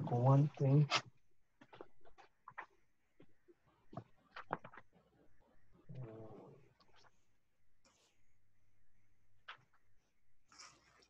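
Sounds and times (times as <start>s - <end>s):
small taps and rustles at desk: 1.6s - 5.0s.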